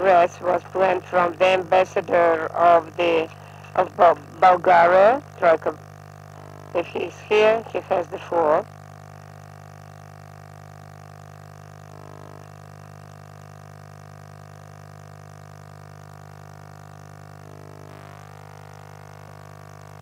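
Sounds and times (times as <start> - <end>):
low electrical mains hum: 0.0 - 20.0.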